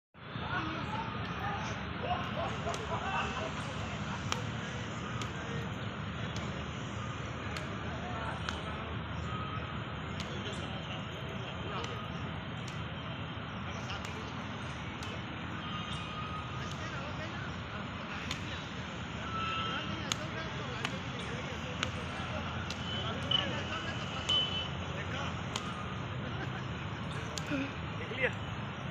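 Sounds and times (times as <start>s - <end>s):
rackets hitting shuttlecock: 2.2s - 5.7s, 7.5s - 8.8s, 10.1s - 10.6s, 13.9s - 15.3s, 18.1s - 18.5s, 20.1s - 23.3s, 25.4s - 25.8s, 27.1s - 27.5s.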